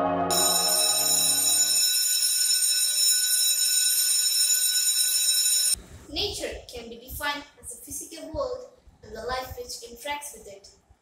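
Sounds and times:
low bell-like tone: 0.0 - 1.8
high electronic tone: 0.0 - 3.0
girl speaking: 6.1 - 10.7.

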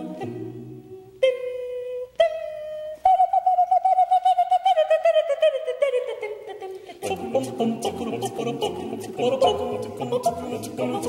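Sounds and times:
woman singing staccato syllables: 0.0 - 11.0.

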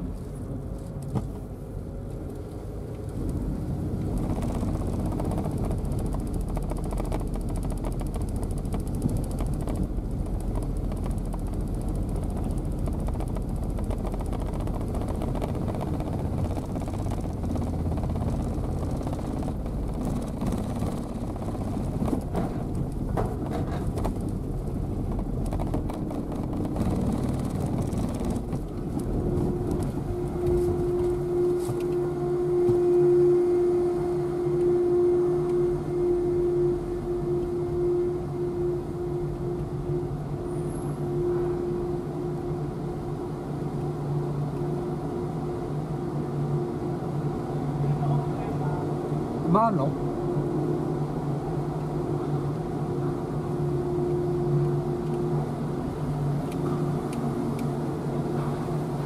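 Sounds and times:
car engine and tyre noise: 0.0 - 59.0
steady fixed pitch hum: 29.5 - 59.0.

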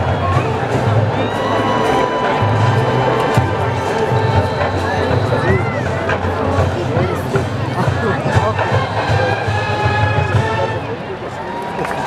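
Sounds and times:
crowd chatter: 0.0 - 12.0
marching band brass and drums: 0.0 - 12.0.

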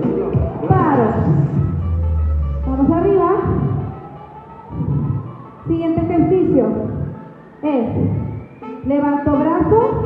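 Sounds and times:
background music: 0.0 - 10.0
long low bass note: 1.0 - 5.2.

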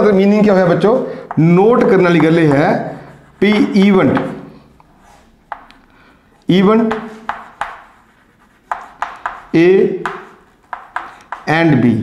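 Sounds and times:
chalk scratching on chalkboard: 0.7 - 5.8, 6.7 - 11.6
chalk tapping on chalkboard: 1.2 - 5.9, 6.6 - 11.8.

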